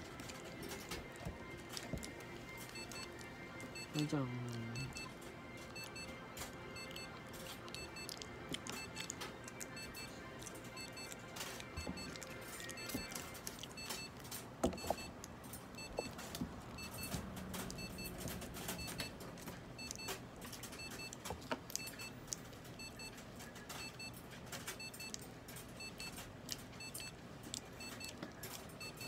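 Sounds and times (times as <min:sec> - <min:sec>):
faint double beeps: 0:03.7 - 0:05.1.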